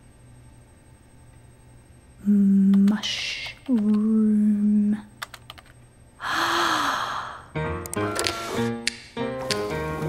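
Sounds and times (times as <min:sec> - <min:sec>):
keyboard clicks: 0:05.2 - 0:05.8, 0:07.8 - 0:09.8
woman gasping: 0:06.2 - 0:07.6
music: 0:07.5 - 0:10.0.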